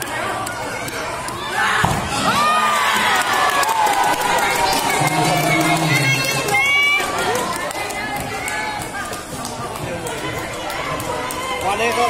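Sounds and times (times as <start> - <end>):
children shouting and cheering: 0.0 - 9.2.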